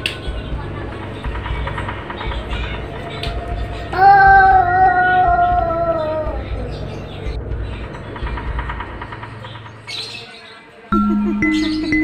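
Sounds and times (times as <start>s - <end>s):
rapid high chirping: 11.0s - 12.0s.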